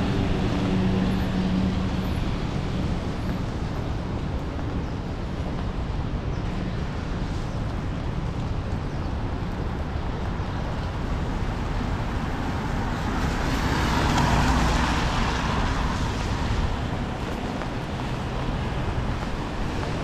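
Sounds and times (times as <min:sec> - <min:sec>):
city traffic in the rain: 0:00.0 - 0:20.0.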